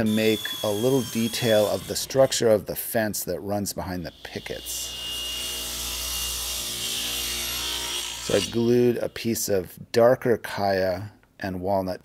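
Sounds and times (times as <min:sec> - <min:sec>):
table saw cutting wood: 0:00.0 - 0:02.7, 0:04.1 - 0:09.0.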